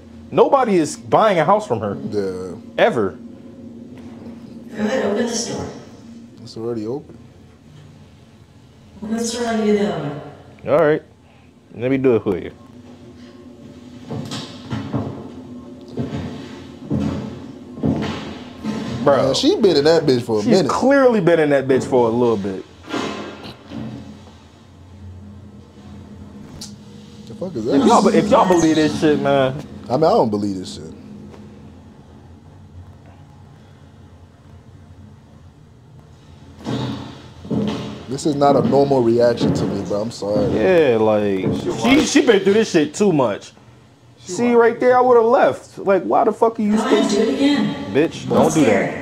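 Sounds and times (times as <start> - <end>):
low steady hum: 0.0 - 49.0
quiet background music: 0.0 - 49.0
person's voice: 27.6 - 29.6, 48.0 - 49.0.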